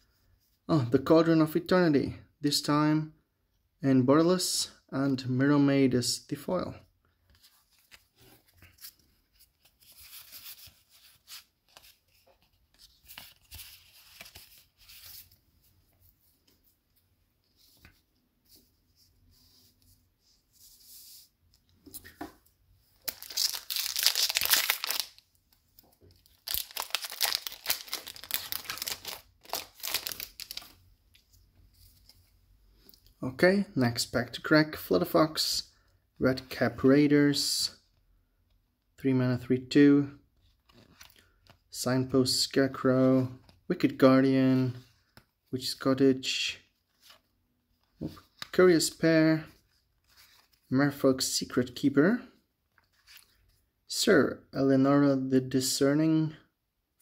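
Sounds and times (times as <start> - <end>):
cards sliding and rustling: 7.3 - 16.7, 49.6 - 50.7
foil wrapper tearing and crinkling: 23.1 - 25.2, 26.3 - 30.6.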